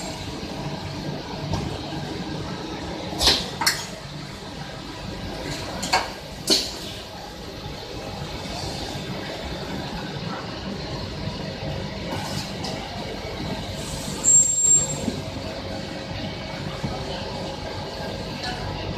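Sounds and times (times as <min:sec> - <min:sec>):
factory machinery noise: 0:00.0 - 0:18.9
thin high whistle: 0:14.2 - 0:15.0.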